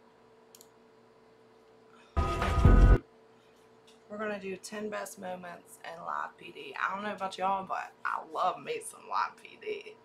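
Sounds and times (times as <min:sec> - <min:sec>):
computer mouse click: 0:00.5 - 0:00.8.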